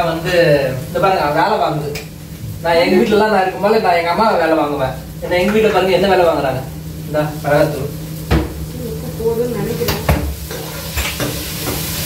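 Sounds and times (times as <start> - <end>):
food sizzling: 0.0 - 12.0.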